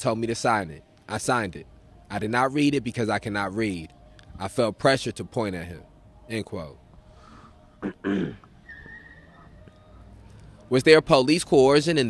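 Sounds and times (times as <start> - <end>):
man clearing throat: 7.8 - 8.5.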